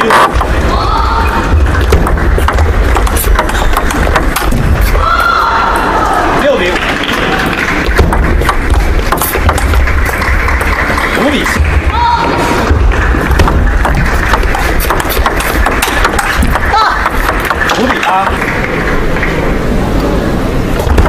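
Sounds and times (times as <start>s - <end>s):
loud din of voices: 0.0s - 21.0s.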